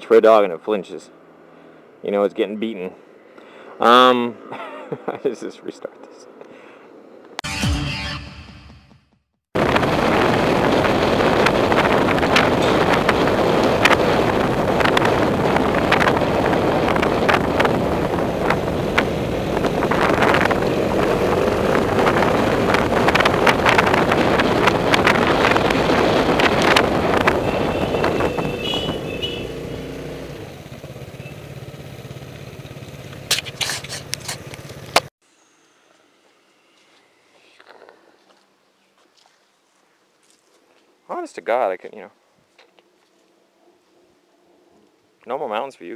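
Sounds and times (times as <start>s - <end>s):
wind rushing over microphone: 9.6s - 31.0s
small scooter engine: 27.2s - 35.1s.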